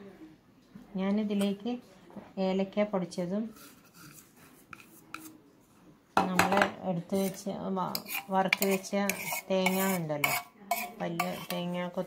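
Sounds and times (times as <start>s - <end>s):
metal spoon scraping steel vessel: 3.5s - 5.4s, 7.1s - 11.9s.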